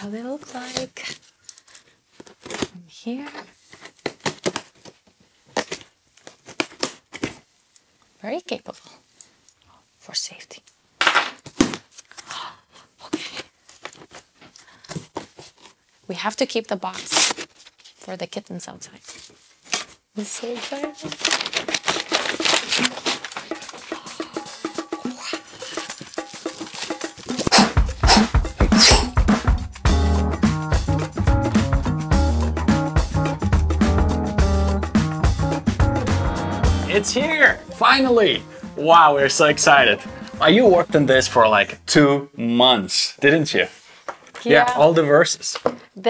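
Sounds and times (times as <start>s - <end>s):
packing tape tearing off cardboard: 2.2s - 7.5s, 13.3s - 15.8s, 16.8s - 18.0s, 19.1s - 24.0s, 25.3s - 29.1s
packing paper rustling: 16.8s - 18.2s, 18.9s - 27.6s
heavy bass beat: 27.6s - 37.8s
music with plucked notes: 29.2s - 41.8s.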